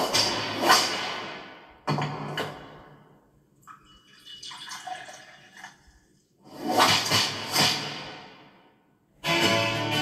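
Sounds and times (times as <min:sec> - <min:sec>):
television sound: 0:00.0 - 0:08.6
liquid pouring into cup: 0:03.6 - 0:06.2.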